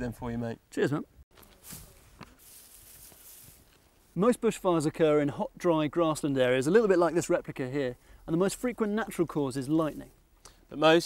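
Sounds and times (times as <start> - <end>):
dry grass rustling: 1.3 - 4.6, 8.4 - 10.2.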